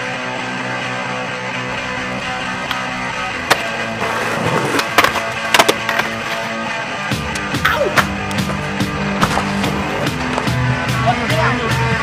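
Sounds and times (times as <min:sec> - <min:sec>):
music soundtrack: 0:00.0 - 0:12.0
skateboard wheels rolling: 0:00.2 - 0:10.8
skateboard clacks: 0:02.6 - 0:06.6.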